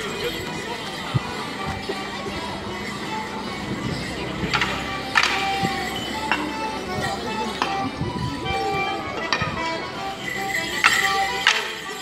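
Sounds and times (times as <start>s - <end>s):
folk tune played live: 0.0s - 12.0s.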